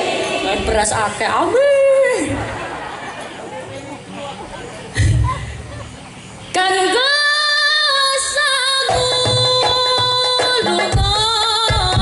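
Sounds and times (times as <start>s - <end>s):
woman singing into microphone: 6.5s - 12.0s.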